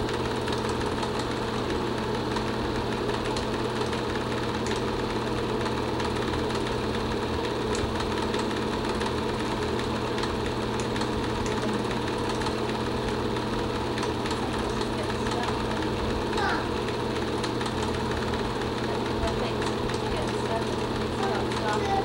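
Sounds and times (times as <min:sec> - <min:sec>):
film projector running: 0:00.0 - 0:22.0.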